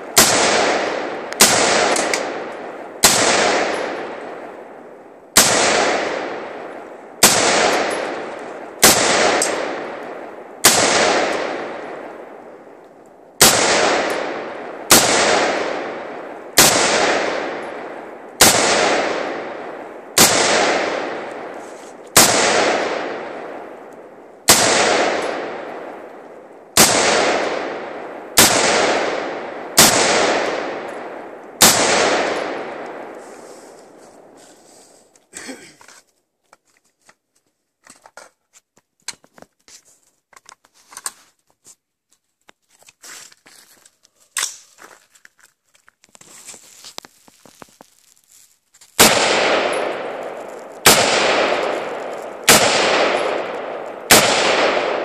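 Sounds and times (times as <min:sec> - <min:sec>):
rifle shots with echo: 0:00.0 - 0:12.8, 0:13.4 - 0:34.4, 0:49.0 - 0:55.0.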